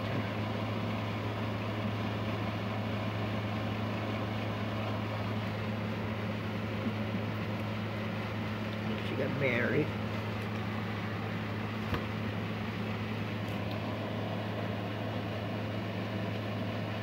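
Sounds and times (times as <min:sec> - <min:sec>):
low machine hum: 0:00.0 - 0:17.0.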